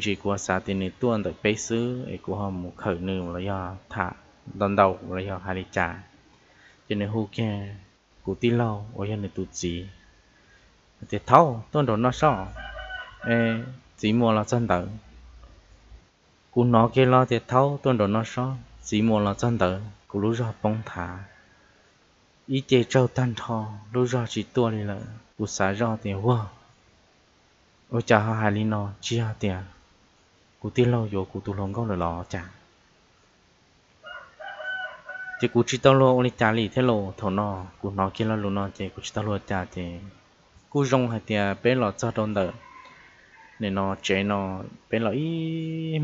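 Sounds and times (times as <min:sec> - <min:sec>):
man speaking: 0:00.0 - 0:06.1, 0:06.9 - 0:10.0, 0:11.0 - 0:12.6, 0:13.2 - 0:15.1, 0:16.6 - 0:21.3, 0:22.5 - 0:26.6, 0:27.9 - 0:29.8, 0:30.6 - 0:32.6, 0:35.4 - 0:42.6, 0:43.6 - 0:46.0
rooster crowing: 0:12.2 - 0:13.8, 0:34.0 - 0:35.7, 0:42.4 - 0:43.8
person talking loudly: 0:13.3 - 0:15.0, 0:44.1 - 0:46.0.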